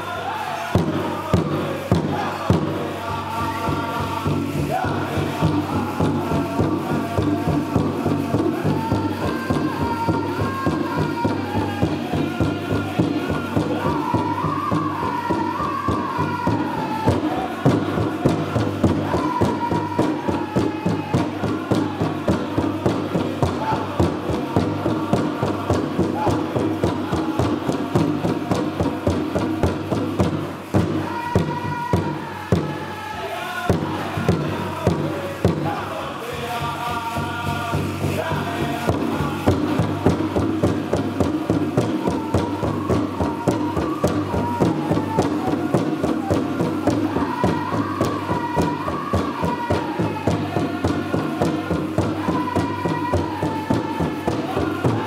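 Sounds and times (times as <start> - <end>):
high-pitched chanting: 0.0 - 55.0
large bass drum beat: 0.8 - 33.0, 33.7 - 55.0.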